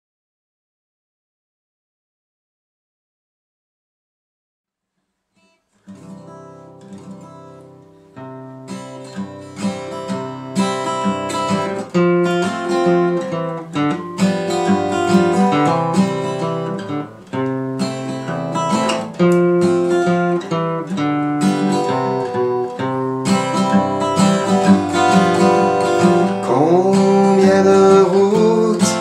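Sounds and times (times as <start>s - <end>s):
acoustic guitar strumming: 5.4s - 29.0s.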